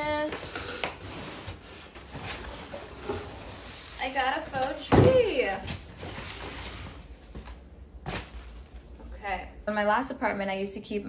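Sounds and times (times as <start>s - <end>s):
cardboard rustling and scraping: 1.0s - 8.9s.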